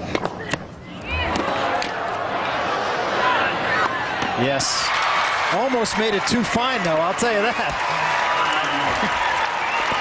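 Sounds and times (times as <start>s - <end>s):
crowd voices reacting: 0.4s - 10.0s.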